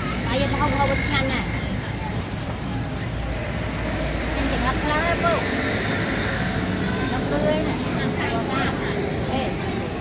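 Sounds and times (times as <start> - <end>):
traffic rumble and hiss: 0.0 - 10.0.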